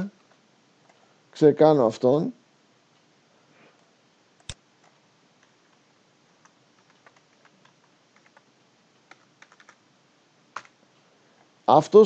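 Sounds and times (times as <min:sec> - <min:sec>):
computer keyboard typing: 0:06.4 - 0:09.8, 0:10.5 - 0:10.8.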